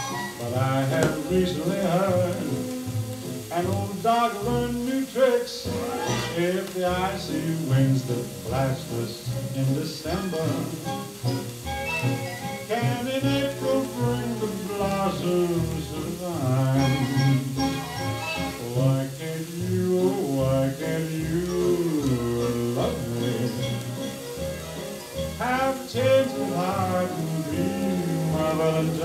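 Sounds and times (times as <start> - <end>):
orchestral pop ballad from vinyl: 0.0 - 29.0.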